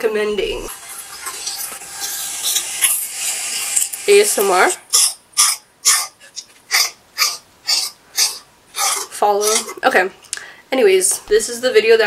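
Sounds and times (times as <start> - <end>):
wax crayon scratching on paper: 8.2 - 9.8.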